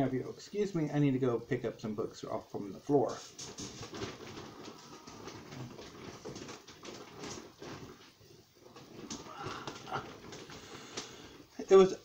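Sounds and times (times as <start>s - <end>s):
book rustling and knocking: 3.3s - 11.3s.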